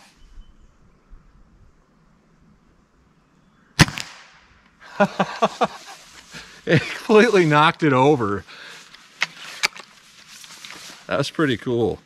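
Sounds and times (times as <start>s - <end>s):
air rifle shot: 3.8s - 4.5s.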